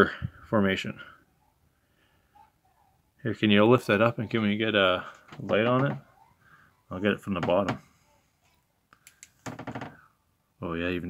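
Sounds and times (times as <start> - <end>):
man's voice: 3.2 - 6.0, 6.9 - 7.8.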